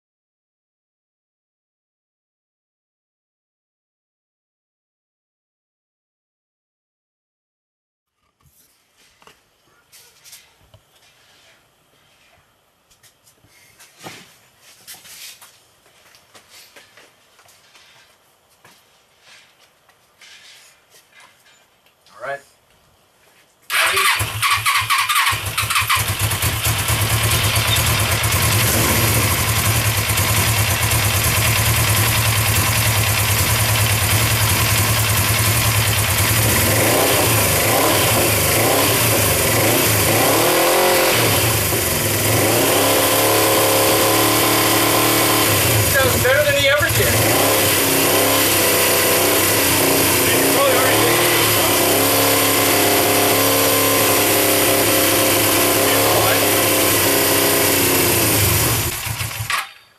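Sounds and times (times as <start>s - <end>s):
motorcycle engine running: 23.7s - 59.8s.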